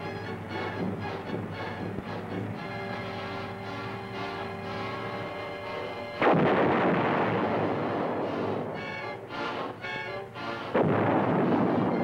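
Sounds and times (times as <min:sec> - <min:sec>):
tank gun blast: 0:06.2 - 0:12.0.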